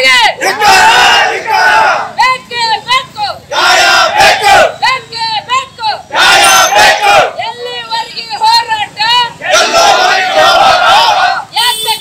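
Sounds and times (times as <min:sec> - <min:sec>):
crowd shouting in unison: 0:00.2 - 0:02.2, 0:03.5 - 0:04.8, 0:06.1 - 0:07.4, 0:09.4 - 0:11.5.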